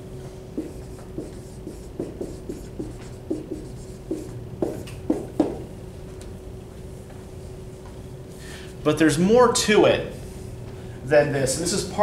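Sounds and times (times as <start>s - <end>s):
marker squeaking on whiteboard: 0.6s - 4.8s.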